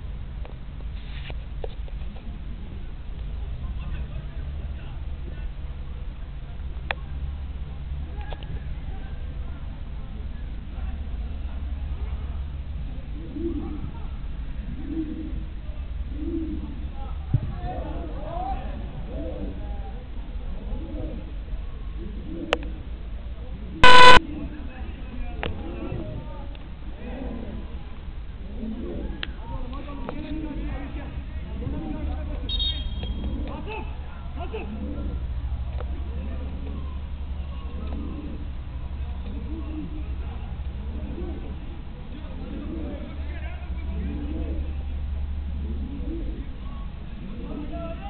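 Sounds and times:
faint distant voices: 1.8s - 48.0s
loud buzzy horn beep: 23.8s - 24.2s.

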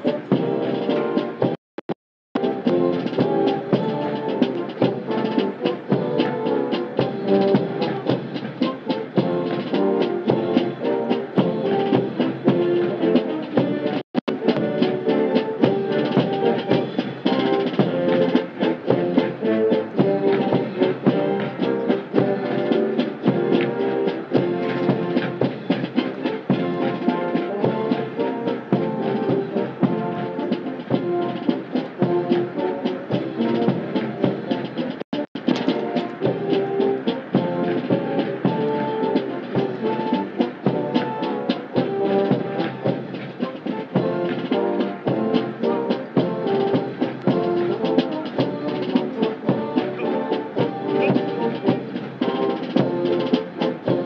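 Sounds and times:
military band playing a march: 0.0s - 1.6s, 2.4s - 54.0s.

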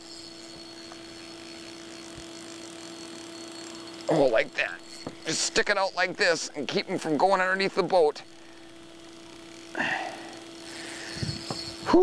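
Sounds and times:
boat motor humming: 0.0s - 12.0s.

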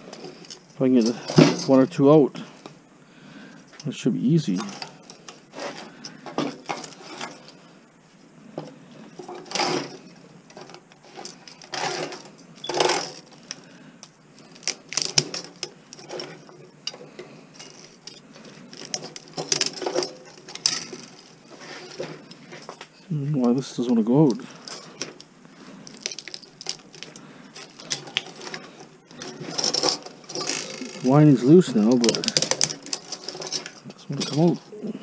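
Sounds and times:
metal tools scraping and clinking: 0.0s - 2.5s, 3.7s - 7.6s, 9.1s - 13.5s, 14.9s - 23.0s, 24.4s - 34.7s.

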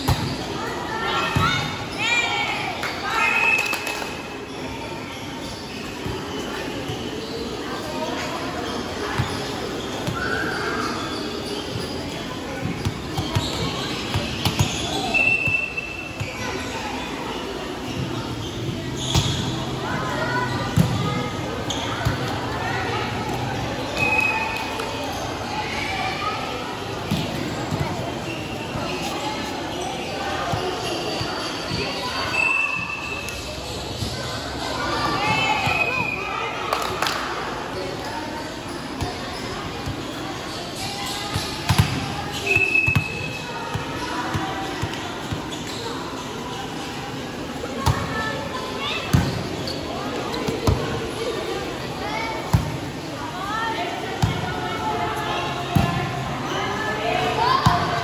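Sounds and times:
voices murmuring: 0.0s - 58.0s.

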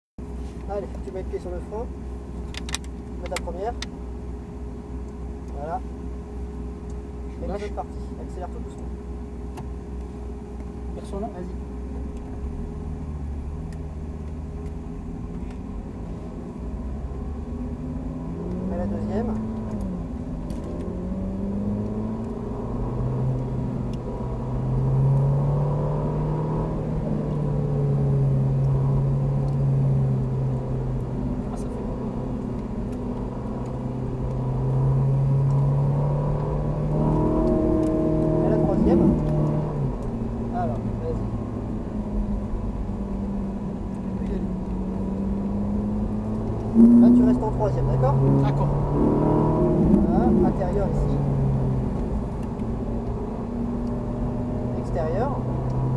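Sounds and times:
car engine accelerating: 6.7s - 55.9s.

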